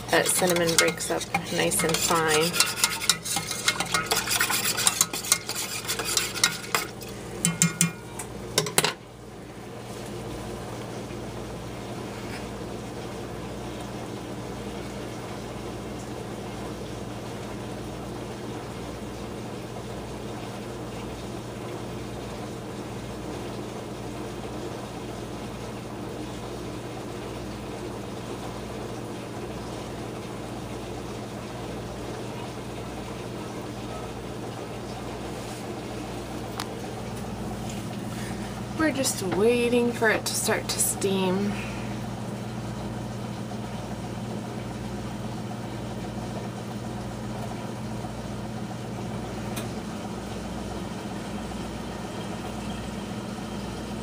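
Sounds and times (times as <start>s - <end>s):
whisk scraping metal saucepan: 0.0s - 8.8s
steady low hum: 0.0s - 26.6s, 27.7s - 54.0s.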